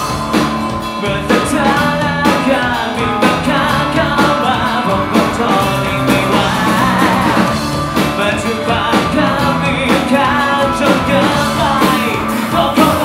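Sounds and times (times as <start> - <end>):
acoustic guitar: 0.0 - 13.0
drum kit: 0.0 - 13.0
electric guitar: 0.0 - 13.0
person singing: 0.0 - 13.0.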